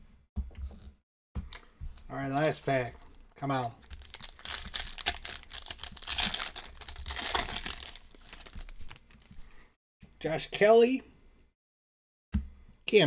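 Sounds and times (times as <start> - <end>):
foil wrapper tearing and crinkling: 3.8 - 9.2.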